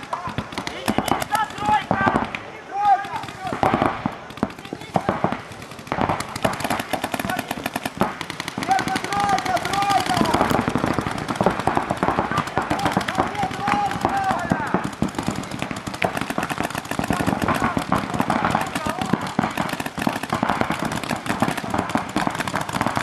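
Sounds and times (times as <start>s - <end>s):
paintball markers firing: 0.0s - 23.0s
voices calling out: 0.0s - 23.0s.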